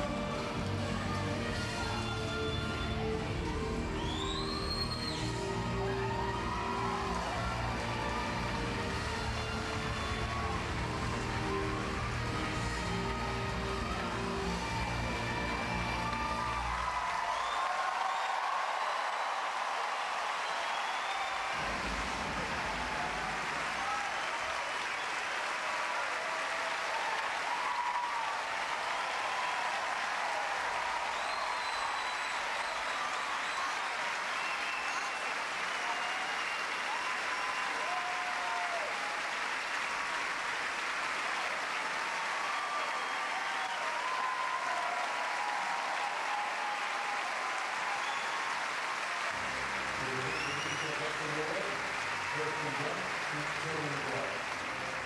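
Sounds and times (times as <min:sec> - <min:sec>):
large audience applauding: 0:00.0 - 0:55.0.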